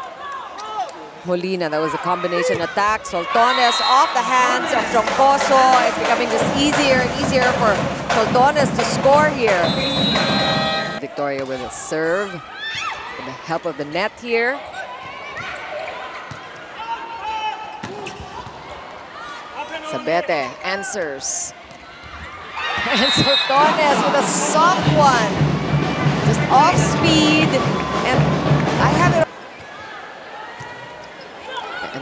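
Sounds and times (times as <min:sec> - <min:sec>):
murmur of arena crowd: 0:00.0 - 0:32.0
volleyball being hit: 0:04.8 - 0:11.0
person speaking: 0:22.9 - 0:25.3.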